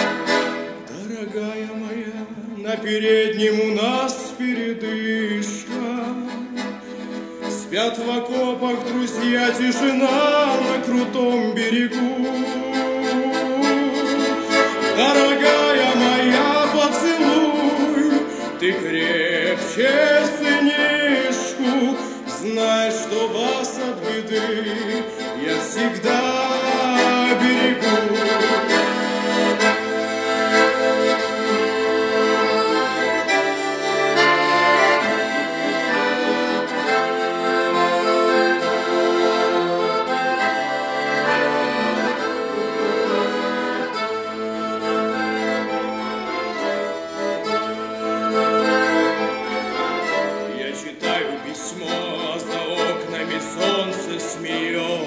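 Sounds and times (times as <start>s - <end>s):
accordion playing: 0.0s - 55.0s.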